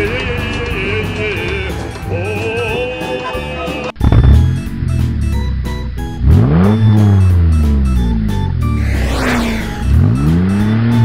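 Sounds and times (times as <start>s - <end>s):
background music: 0.0s - 11.0s
car engine revving: 4.0s - 11.0s.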